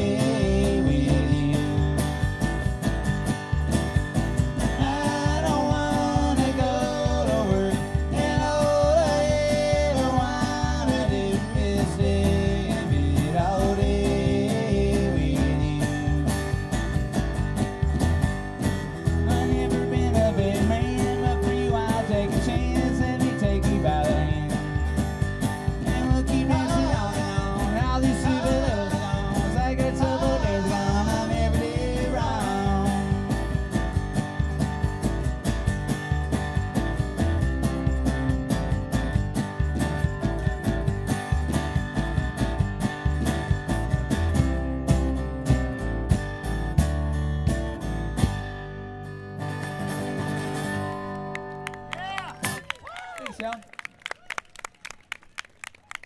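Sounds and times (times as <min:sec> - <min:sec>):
strummed acoustic guitar: 0:00.0 - 0:52.6
upright double bass: 0:00.0 - 0:52.6
wavering melody line: 0:18.6 - 0:24.4.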